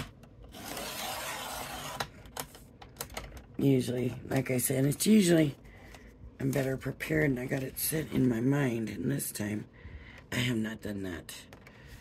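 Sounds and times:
blade scraping card: 0.0s - 2.1s.

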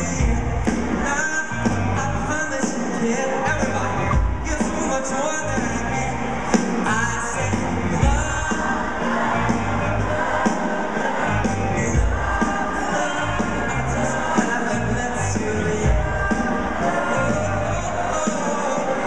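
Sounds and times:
man singing: 0.0s - 9.5s, 11.2s - 19.0s
live band music: 0.0s - 19.0s.

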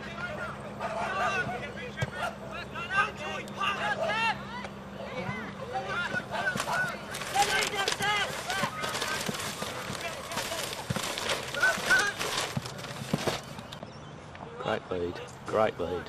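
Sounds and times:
distant people shouting: 0.0s - 13.4s.

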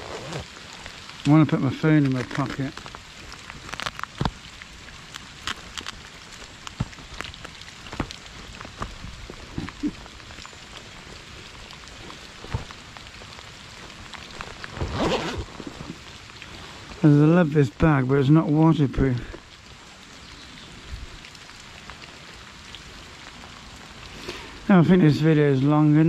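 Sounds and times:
rain hissing: 0.0s - 26.0s
sharp rain taps: 0.0s - 26.0s.

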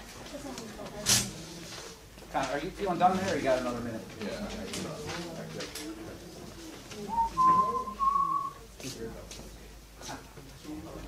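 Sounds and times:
faint murmuring voices: 0.0s - 11.0s
person whistling: 7.1s - 8.6s.

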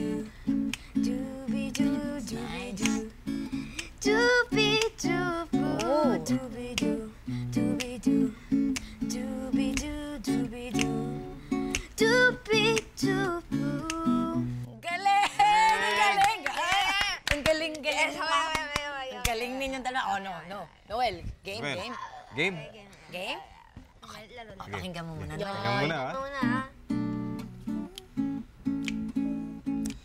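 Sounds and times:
strummed guitar chords: 0.0s - 14.7s
boy scat-singing: 0.9s - 3.2s, 3.8s - 11.2s.

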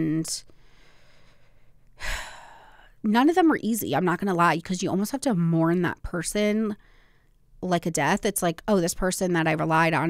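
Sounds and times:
woman speaking: 0.0s - 0.5s, 3.0s - 6.8s, 7.6s - 10.0s
woman breathing close to microphone: 0.5s - 3.0s, 6.8s - 7.4s.

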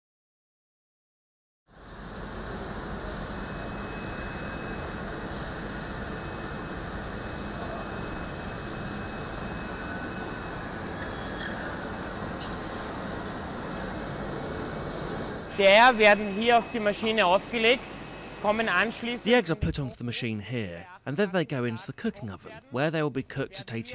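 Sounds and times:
factory machinery noise: 1.8s - 19.9s
high hiss: 11.9s - 19.5s.

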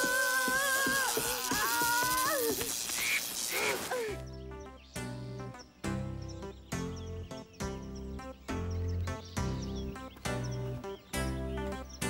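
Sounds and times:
voice cries: 0.0s - 2.7s
rain: 0.0s - 4.2s
wind: 0.0s - 12.0s.

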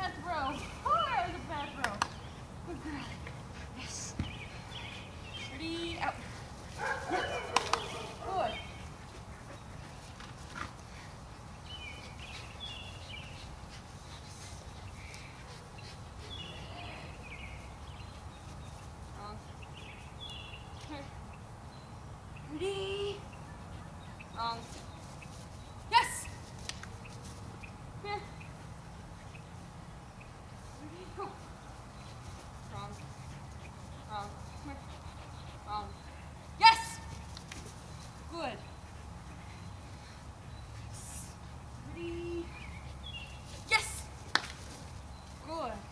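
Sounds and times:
quiet outdoor background: 0.0s - 45.9s
dog barking and yipping: 6.8s - 8.5s.

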